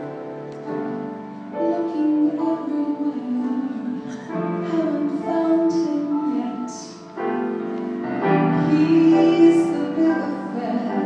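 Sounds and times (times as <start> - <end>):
slow jazz piano: 0.0 - 11.0.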